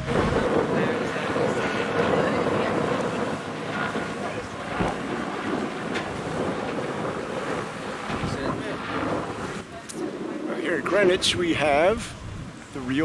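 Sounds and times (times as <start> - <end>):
boat wash rushing on water: 0.0 - 13.0
wind buffeting microphone: 0.0 - 13.0.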